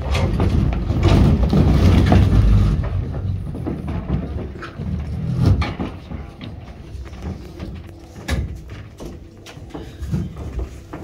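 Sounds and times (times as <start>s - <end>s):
metal chairs scraping floor: 0.0s - 11.0s
shuffling footsteps: 0.0s - 11.0s.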